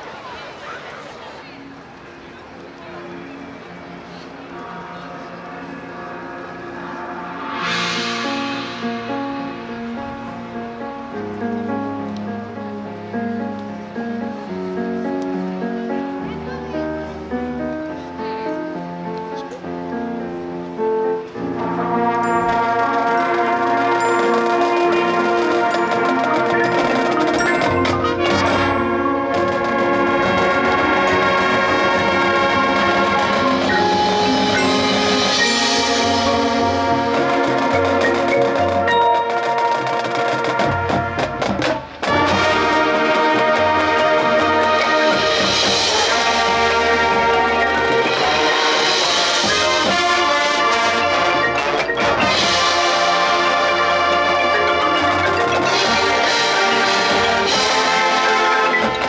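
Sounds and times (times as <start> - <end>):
marimbas: 2.8 - 12.1, 21.6 - 59.0
brass chords: 3.5 - 59.0
percussion: 6.6 - 11.5, 21.8 - 59.0.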